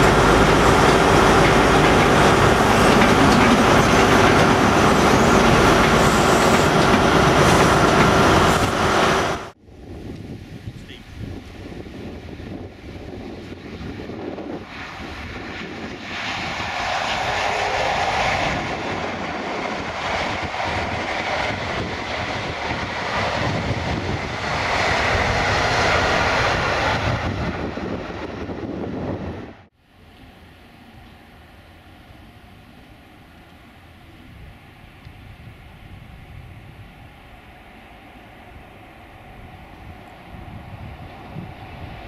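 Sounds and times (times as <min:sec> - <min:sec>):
diesel train engine running: 0:00.0 - 0:09.6, 0:16.6 - 0:29.1
train rumbling on rails: 0:00.0 - 0:10.0, 0:11.2 - 0:42.0.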